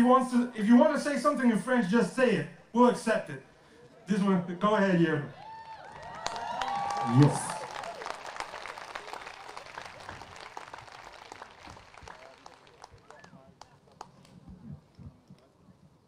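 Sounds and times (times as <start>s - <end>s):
crowd applauding: 5.4s - 14.3s.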